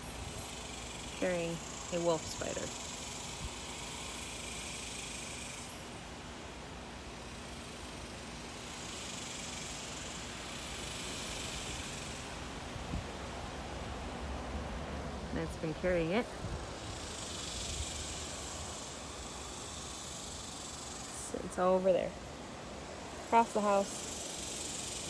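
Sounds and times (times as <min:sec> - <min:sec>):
hiss: 0:08.7 - 0:12.4, 0:16.8 - 0:21.3, 0:23.8 - 0:25.0.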